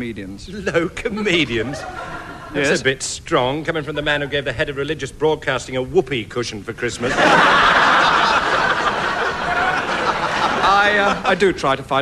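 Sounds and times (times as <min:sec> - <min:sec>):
studio audience laughing: 0:01.4 - 0:02.8, 0:07.0 - 0:11.7.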